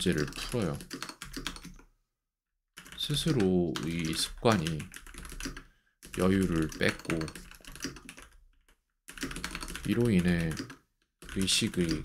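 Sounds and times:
computer keyboard typing: 0:00.0 - 0:01.9, 0:02.8 - 0:12.0.

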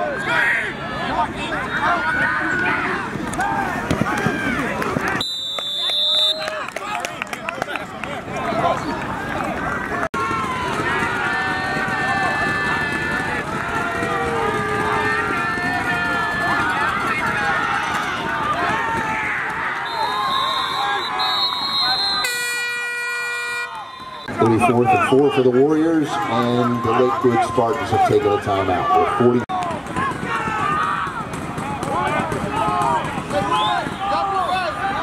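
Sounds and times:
crowd talking and shouting: 0:00.0 - 0:35.0
air horn blast: 0:14.2 - 0:15.4, 0:21.8 - 0:24.2.

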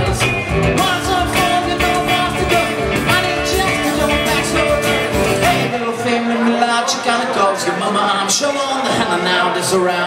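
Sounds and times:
acoustic and electric guitars: 0:00.0 - 0:10.0.

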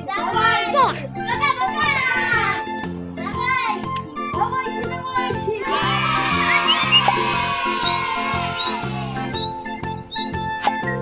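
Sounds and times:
background music: 0:00.0 - 0:11.0
children squealing: 0:05.7 - 0:09.4.

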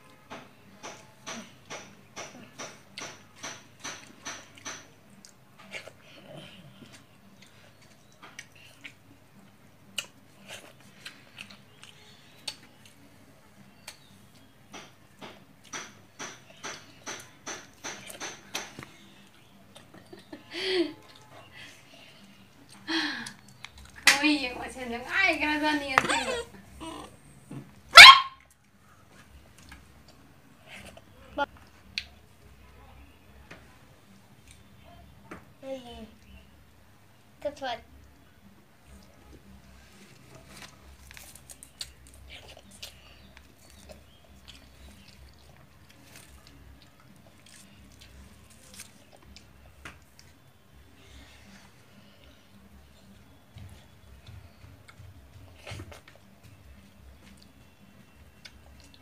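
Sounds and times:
child chewing with mouth smacks: 0:01.3 - 0:20.4, 0:21.0 - 0:24.1, 0:28.4 - 0:32.4, 0:38.1 - 0:59.0
dog barking: 0:27.9 - 0:28.4.

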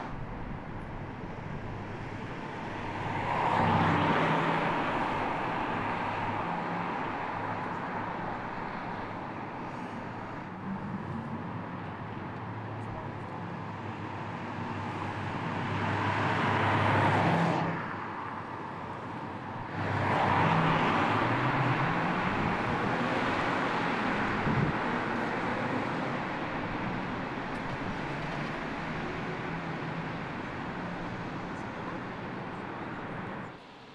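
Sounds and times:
tyre and road noise: 0:00.0 - 0:33.9
car passing: 0:01.6 - 0:33.5.

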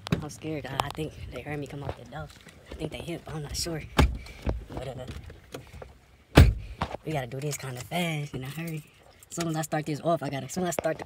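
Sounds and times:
car door thud: 0:03.9 - 0:04.6, 0:06.3 - 0:06.9.

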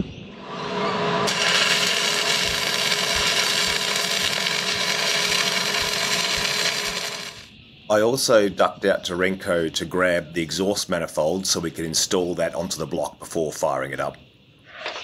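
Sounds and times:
arc welding crackling hiss: 0:01.2 - 0:07.5.

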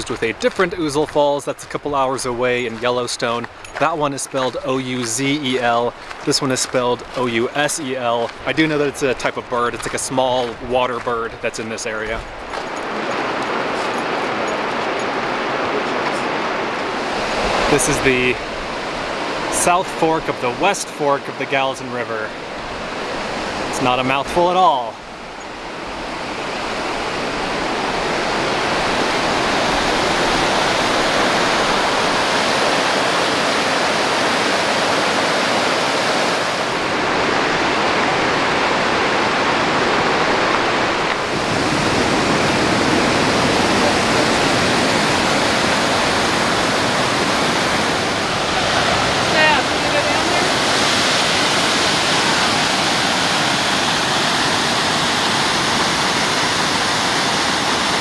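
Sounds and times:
rushing river whitewater: 0:00.0 - 0:58.0.

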